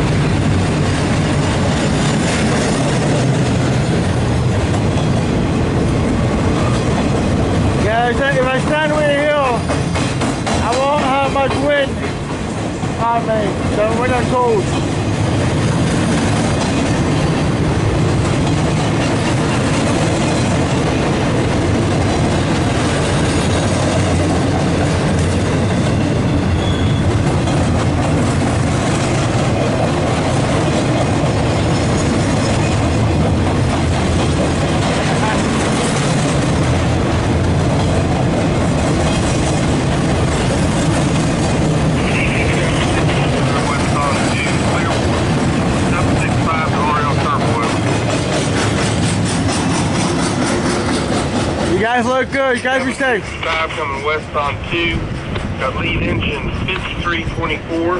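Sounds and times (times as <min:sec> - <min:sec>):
steel train wheels on rails: 0:00.0 - 0:57.9.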